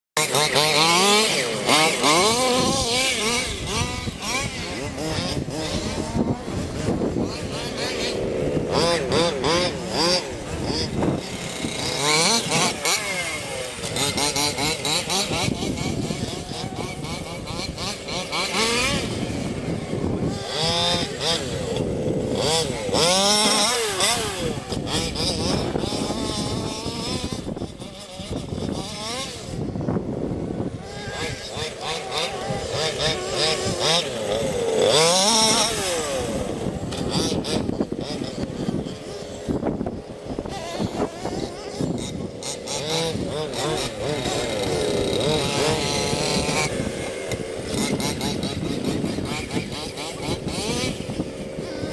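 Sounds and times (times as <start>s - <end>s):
rc car motor revving: 0.2s - 51.9s.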